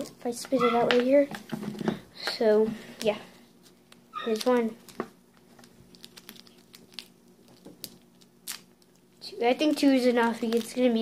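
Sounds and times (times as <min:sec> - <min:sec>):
plastic wrapper crinkling: 0:03.0 - 0:11.0.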